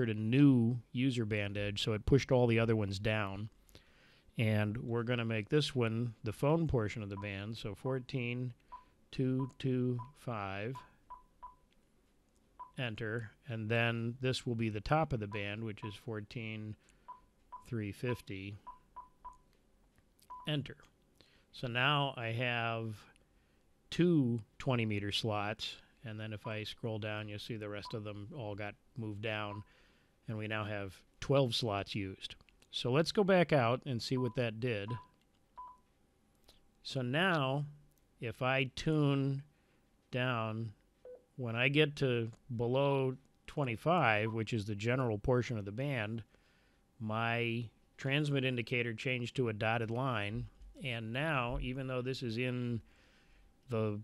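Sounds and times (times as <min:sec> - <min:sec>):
short touchscreen beeps: 0:10.8 - 0:11.6, 0:17.1 - 0:19.5, 0:34.2 - 0:35.8.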